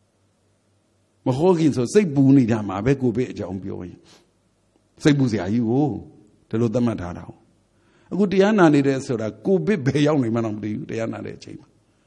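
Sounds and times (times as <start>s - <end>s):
man speaking: 1.3s - 4.0s, 5.0s - 7.4s, 8.1s - 11.6s.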